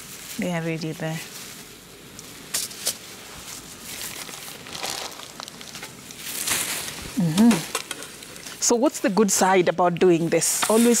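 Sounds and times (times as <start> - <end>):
food sizzling in a frying pan: 3.8 - 11.0.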